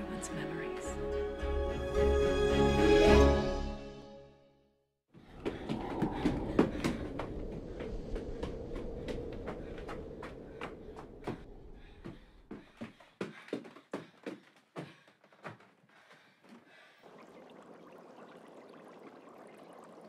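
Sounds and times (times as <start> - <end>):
footsteps on stone floor: 5.2 - 16.7.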